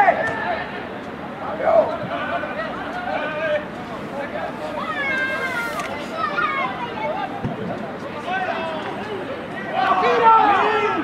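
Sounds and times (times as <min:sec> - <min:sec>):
other shouts and chatter: 0:00.0 - 0:11.0
high drawn-out shout: 0:09.6 - 0:11.0.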